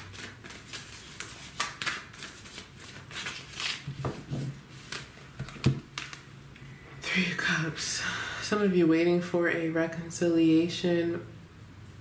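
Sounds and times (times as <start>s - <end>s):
cards being shuffled: 0.0s - 6.2s.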